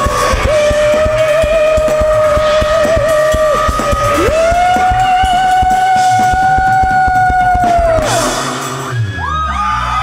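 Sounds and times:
rapid drum hits: 0.0 - 8.9.

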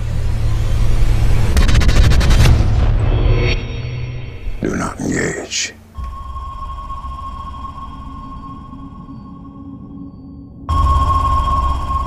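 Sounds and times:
low rumble: 5.9 - 12.0
high-pitched electronic tone: 6.0 - 12.0.

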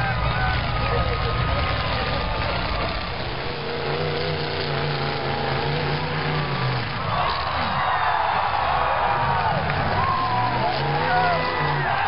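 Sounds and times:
mix of voices: 0.0 - 3.5
car engines revving: 0.0 - 12.0.

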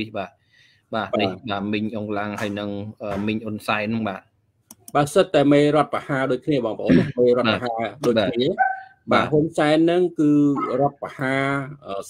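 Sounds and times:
man speaking: 0.0 - 0.3, 0.9 - 12.0.

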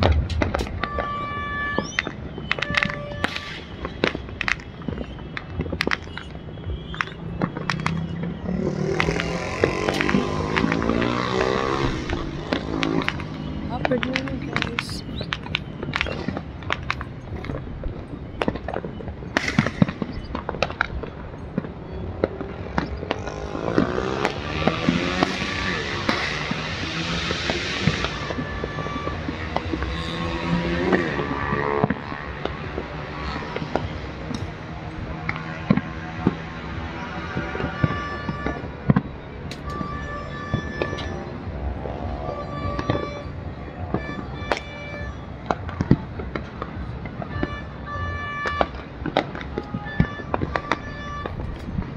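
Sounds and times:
fireworks bangs and pops: 0.0 - 51.9.

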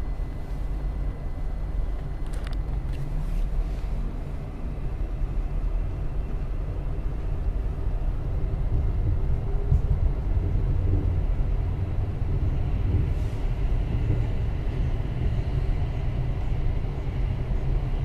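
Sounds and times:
train wheels rumbling: 4.0 - 18.0.

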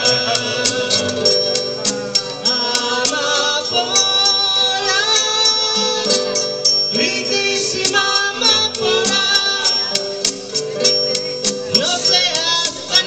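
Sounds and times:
acoustic guitar: 0.0 - 13.0
woman singing into a microphone: 2.5 - 6.4, 7.0 - 10.2, 11.7 - 13.0.

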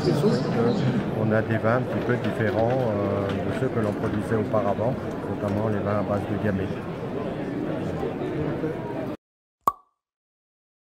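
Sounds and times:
background hall noise: 0.0 - 9.2.

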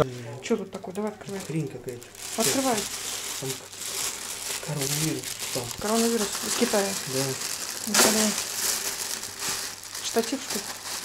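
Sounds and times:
plastic bag crinkling: 0.8 - 11.0.

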